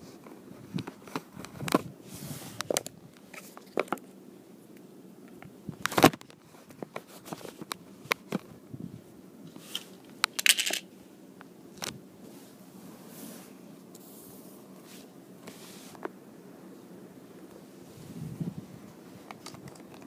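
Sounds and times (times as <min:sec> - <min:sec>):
small objects clicking and tapping: 0:10.2 - 0:10.8.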